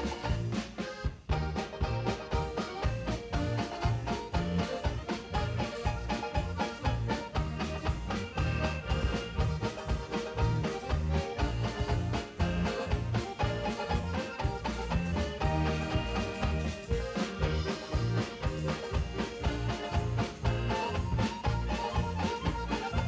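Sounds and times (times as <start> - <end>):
accordions and banjo playing polka: 0.0 - 23.0
steady bass beat: 1.1 - 23.0.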